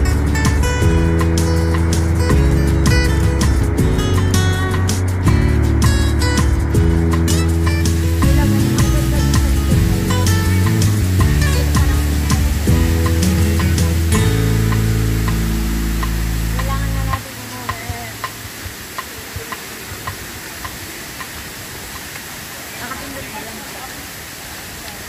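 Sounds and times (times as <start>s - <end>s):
music with heavy bass line: 0.0s - 18.6s
waterfall rushing: 0.0s - 25.0s.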